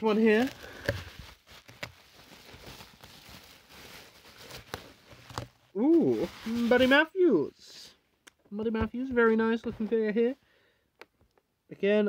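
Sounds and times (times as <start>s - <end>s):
bubble wrap crinkling: 0.0s - 7.1s.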